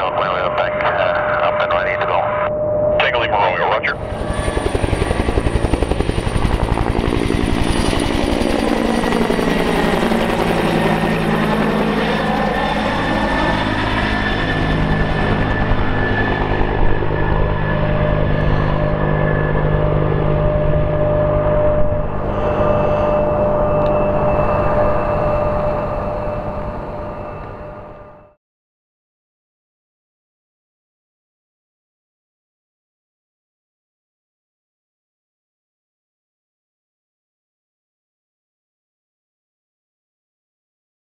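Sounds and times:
helicopter rotor beat: 0.0 - 28.4
turbine whine: 0.0 - 28.4.

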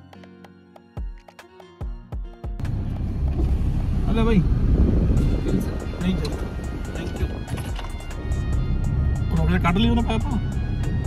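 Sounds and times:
music playing: 0.0 - 3.3, 4.0 - 11.0
car engine rumble inside cabin: 2.6 - 11.0.

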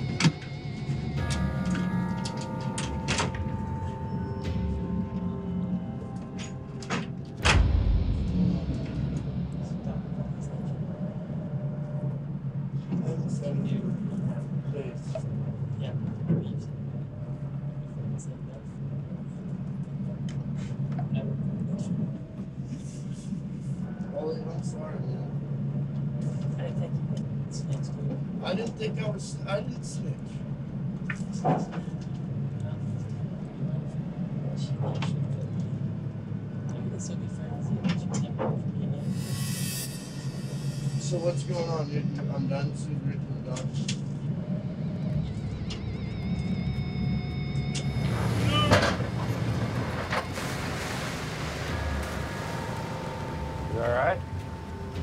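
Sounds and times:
held music tone: 0.0 - 12.4, 39.0 - 43.3, 50.5 - 55.0
boat engine rumble: 0.0 - 55.0
muffled speech: 12.8 - 23.2, 23.8 - 30.4, 31.1 - 39.1, 41.0 - 44.1.

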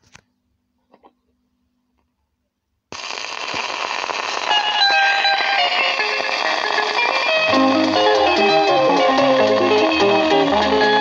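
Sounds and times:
vinyl surface hiss and crackle: 2.9 - 11.0
high guitar lines: 4.4 - 11.0.

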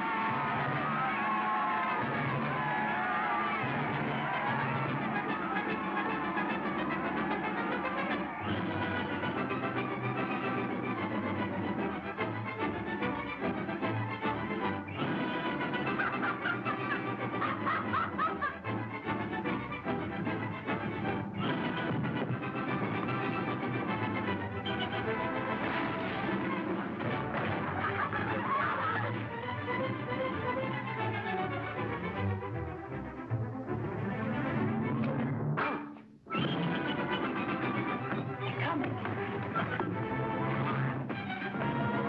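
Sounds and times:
orchestral music with brass: 0.0 - 42.0.

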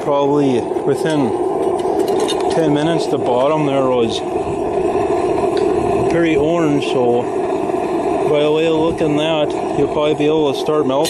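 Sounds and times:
roaring propane burner flame: 0.0 - 11.0.

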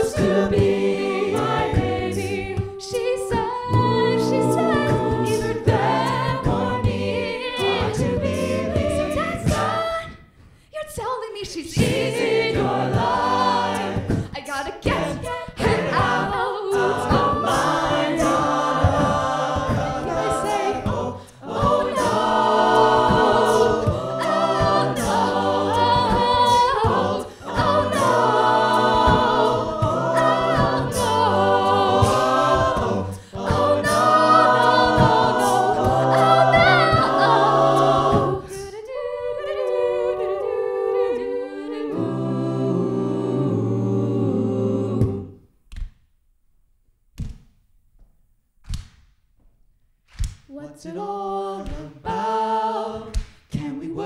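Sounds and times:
vocal percussion: 0.0 - 45.5, 50.1 - 54.0
backing vocal harmonies: 0.0 - 45.6, 50.5 - 54.0
woman singing lead: 1.4 - 10.2, 13.9 - 42.2.

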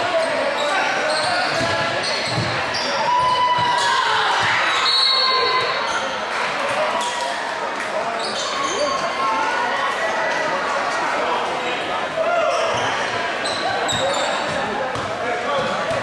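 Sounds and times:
crowd chatter echoing: 0.0 - 16.0
sneaker squeaks: 0.1 - 6.1, 8.2 - 9.1, 12.4 - 16.0.

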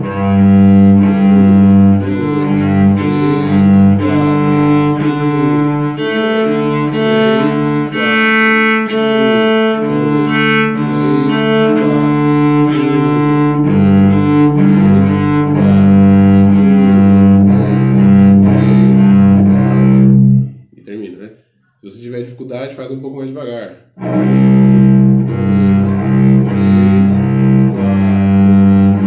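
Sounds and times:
bowed cello long notes: 0.0 - 20.6, 24.0 - 29.0.

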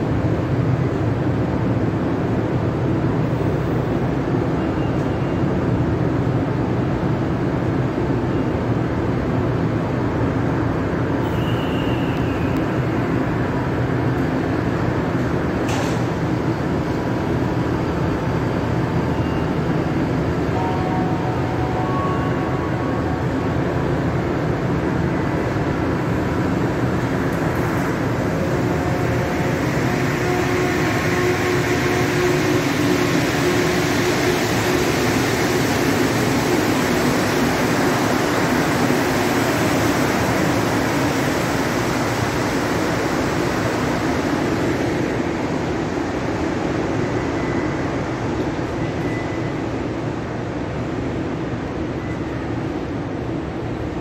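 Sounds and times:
metro train humming: 0.0 - 54.0.

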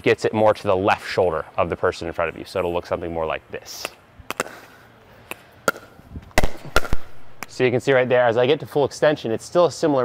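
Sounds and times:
paddles hitting plastic ball: 3.8 - 4.7, 5.3 - 7.6.

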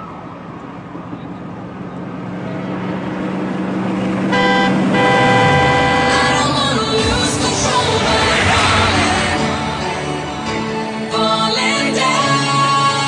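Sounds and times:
synthesized noise build: 6.8 - 11.2.

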